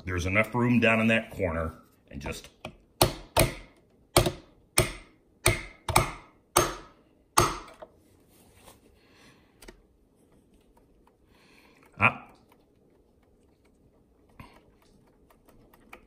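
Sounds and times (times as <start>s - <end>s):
hammer tapping metal punch: 3.0s - 7.8s.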